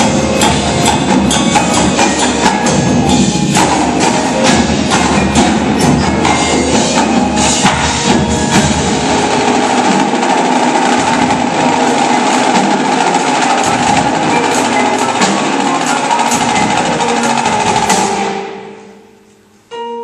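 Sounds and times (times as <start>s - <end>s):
marching drums: 0.0s - 18.8s
mallet percussion: 0.0s - 20.0s.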